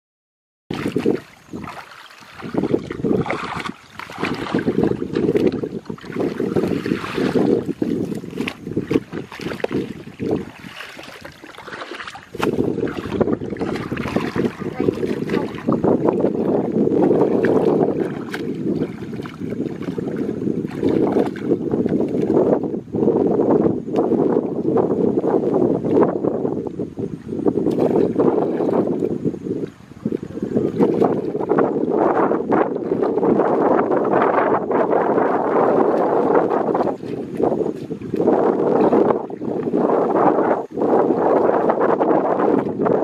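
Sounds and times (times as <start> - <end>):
water splashing and sloshing: 0.7 - 22.7, 23.9 - 43.0
wind noise on microphone: 0.7 - 43.0.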